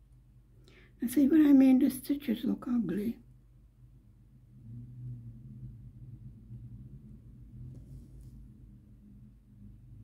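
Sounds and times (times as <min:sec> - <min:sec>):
low steady hum: 0:00.0 - 0:10.0
thread drawn through canvas: 0:07.6 - 0:08.5.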